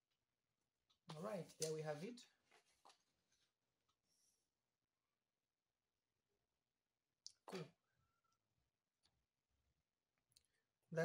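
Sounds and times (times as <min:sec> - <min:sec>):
person speaking: 0:01.1 - 0:02.4.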